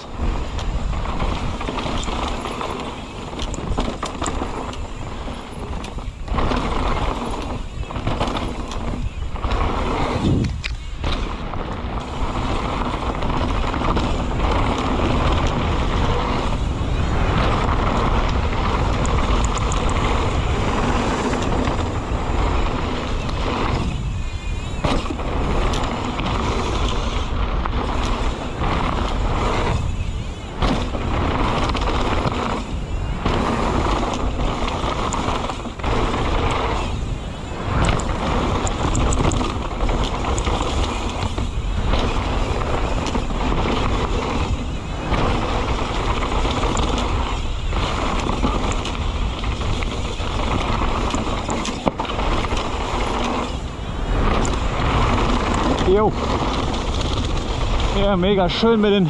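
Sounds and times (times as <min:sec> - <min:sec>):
bike rattling: 0:00.0 - 0:59.0
tyres rolling over dirt: 0:00.0 - 0:59.0
wind on microphone: 0:00.0 - 0:59.0.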